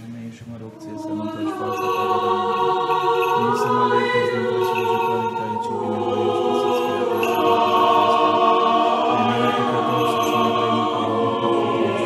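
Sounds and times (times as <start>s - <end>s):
choir singing long-held chords: 0.0s - 12.0s.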